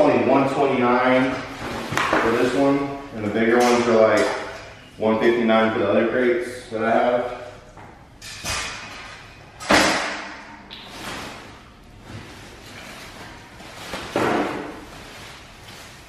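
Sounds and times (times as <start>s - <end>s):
foam packaging rustling: 10.8s - 16.0s.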